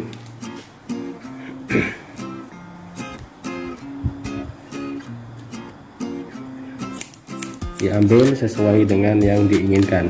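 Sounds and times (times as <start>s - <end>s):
acoustic guitar picking notes: 0.0s - 10.0s.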